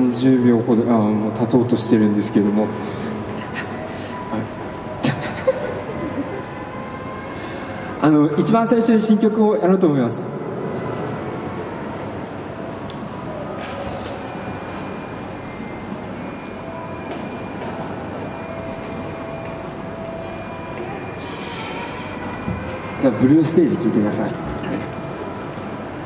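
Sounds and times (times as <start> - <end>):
hall rumble and murmur: 0.0 - 26.0.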